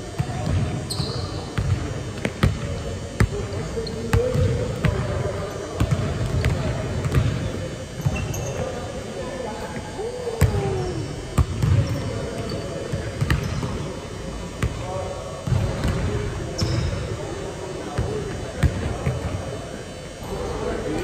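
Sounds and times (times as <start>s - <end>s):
echoing voices: 0.0s - 21.0s.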